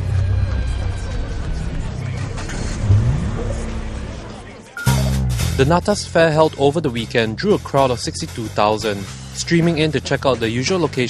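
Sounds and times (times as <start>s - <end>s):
low rising sound effect: 0.0s - 5.8s
title music: 1.8s - 6.6s.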